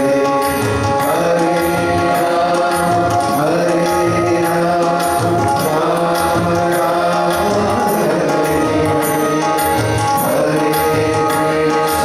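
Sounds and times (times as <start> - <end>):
hand cymbals striking a beat: 0.0 - 12.0
harmonium drone: 0.0 - 12.0
man singing devotional song: 0.0 - 12.0
tabla: 0.0 - 12.0.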